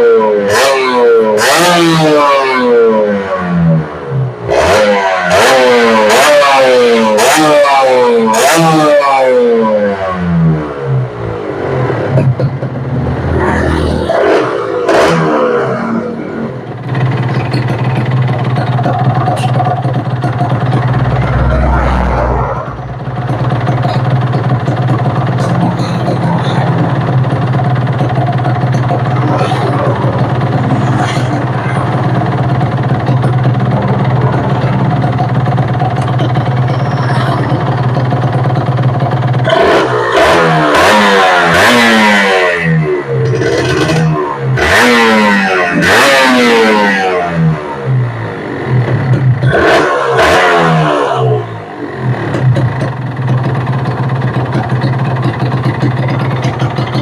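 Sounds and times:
motorcycle engine revving: 0.0s - 57.0s
motorcycle engine idling: 16.0s - 42.2s, 46.6s - 49.5s, 51.4s - 57.0s.

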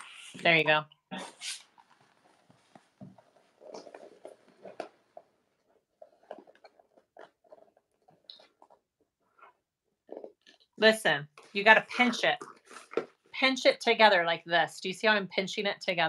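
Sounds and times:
vinyl bag rustling and clicking: 1.6s - 8.8s.

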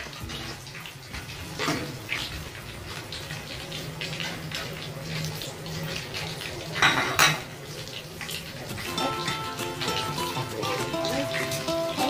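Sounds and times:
oil bubbling and crackling: 0.0s - 12.0s.

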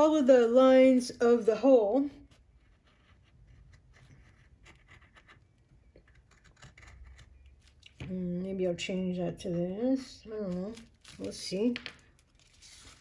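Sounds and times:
pencil scratching on paper: 2.2s - 7.5s.

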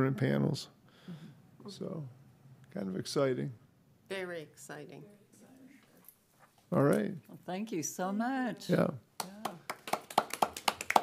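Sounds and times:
people clapping: 9.2s - 11.0s.

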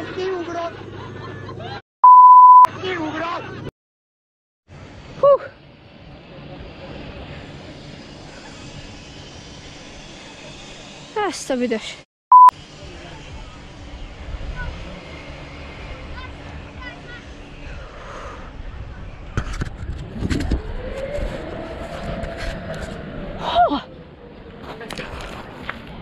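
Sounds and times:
electronic beep: 2.0s - 2.7s, 12.3s - 12.5s
wind rumbling on microphone: 12.8s - 26.0s.

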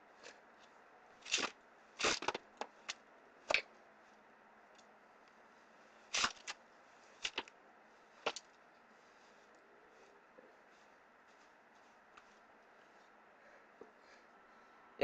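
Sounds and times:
playing cards scraping and rustling: 1.2s - 3.7s, 6.1s - 7.5s.

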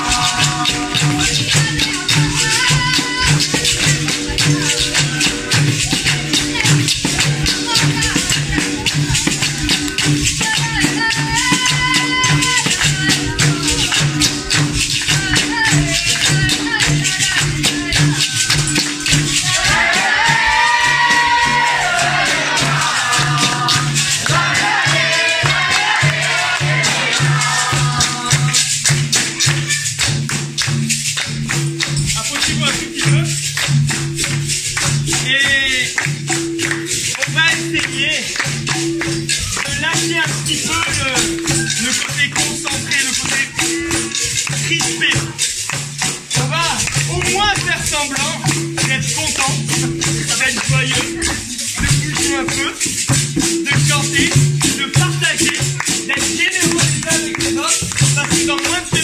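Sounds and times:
voices singing: 0.0s - 30.0s, 35.1s - 59.0s
hand drum: 0.0s - 59.0s
hand-clapping: 0.0s - 59.0s
rattles shaking: 0.0s - 59.0s
tambourine: 0.0s - 59.0s.

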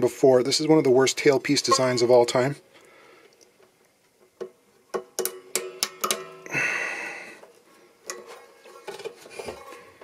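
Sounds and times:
banjo strings ringing: 1.6s - 2.4s
metal clicks and taps: 4.4s - 6.3s.

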